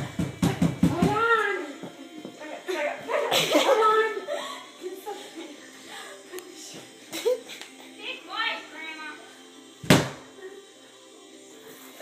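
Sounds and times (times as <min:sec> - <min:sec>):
loud thump: 0:09.8 - 0:10.2.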